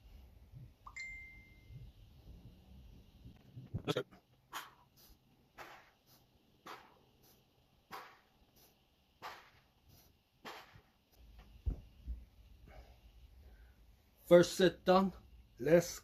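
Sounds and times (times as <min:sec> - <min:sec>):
low thump: 0:11.6 - 0:12.2.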